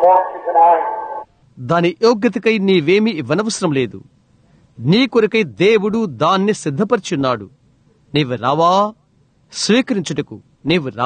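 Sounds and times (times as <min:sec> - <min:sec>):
person talking: 0:00.0 - 0:01.2.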